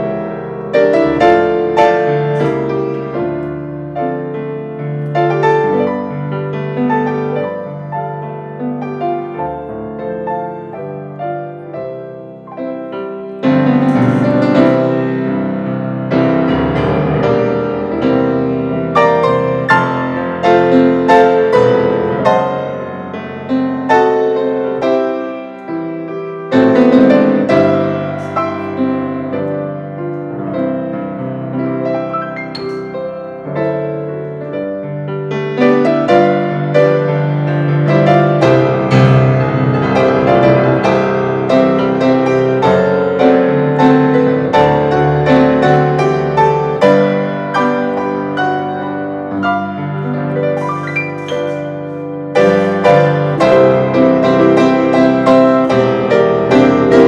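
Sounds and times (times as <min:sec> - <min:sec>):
grand pianos playing chords: 0:00.0 - 0:57.0.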